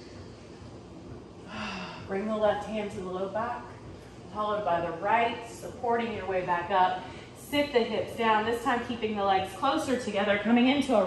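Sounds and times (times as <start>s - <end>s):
woman breathing: 1.4s - 2.2s, 7.0s - 7.5s.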